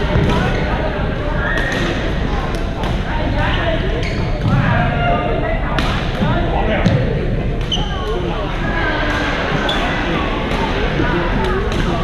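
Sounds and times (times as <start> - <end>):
echoing overlapping voices: 0.0 - 12.0.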